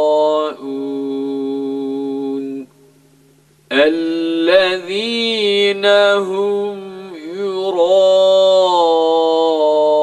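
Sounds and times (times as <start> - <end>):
man reciting chant: 0.0 - 2.7, 3.7 - 10.0.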